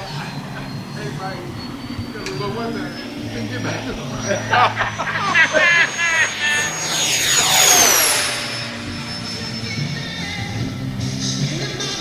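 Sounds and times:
electric jet fan whine passing: 0:00.0 - 0:11.0.

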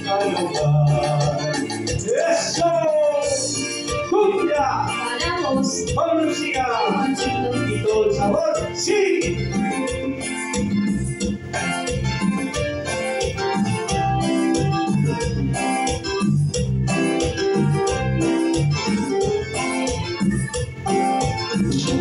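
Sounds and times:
instrumental keyboard music over beat: 0:00.0 - 0:22.0.

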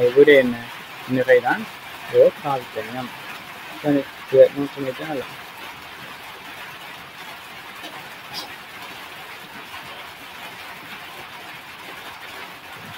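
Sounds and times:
steady background hiss: 0:00.0 - 0:05.4.

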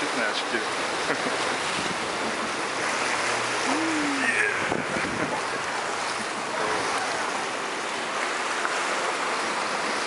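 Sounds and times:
waves breaking on rocky shore: 0:00.0 - 0:10.0
wind on microphone: 0:03.6 - 0:05.6.

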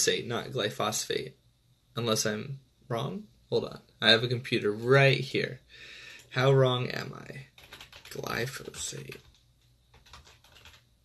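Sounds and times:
typing on computer keyboard: 0:07.5 - 0:10.8.

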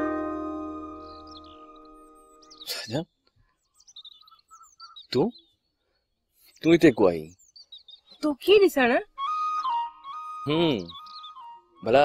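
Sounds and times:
held music chord: 0:00.0 - 0:02.5
birds chirping: 0:00.0 - 0:12.0.

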